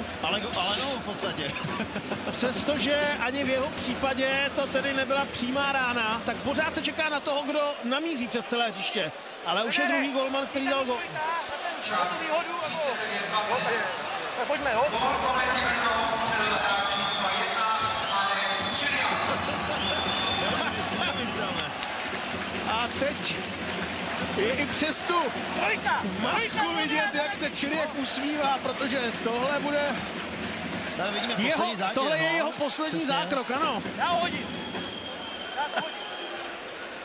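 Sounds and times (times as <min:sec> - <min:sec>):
crowd noise: 0:00.0 - 0:37.0
man talking: 0:00.2 - 0:01.6, 0:24.4 - 0:30.0
commentator speaking: 0:02.4 - 0:19.8, 0:24.4 - 0:30.0.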